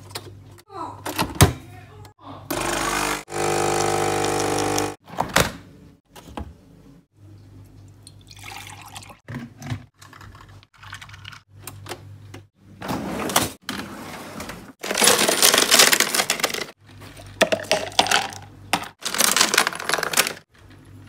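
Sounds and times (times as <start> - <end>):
ice cubes rattling and clinking: 14.8 - 20.4.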